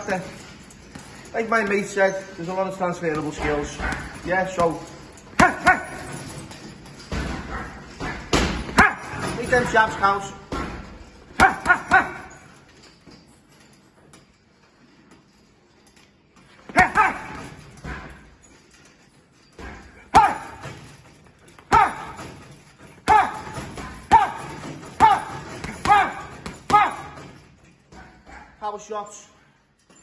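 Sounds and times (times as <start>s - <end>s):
gloves punching heavy bag: 3.0s - 6.5s, 7.1s - 9.9s, 10.5s - 12.4s, 16.7s - 18.2s, 19.6s - 20.9s, 21.6s - 28.4s.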